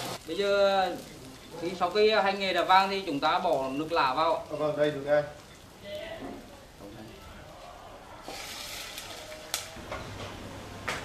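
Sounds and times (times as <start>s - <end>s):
water sizzling in hot oil: 0.0s - 9.7s.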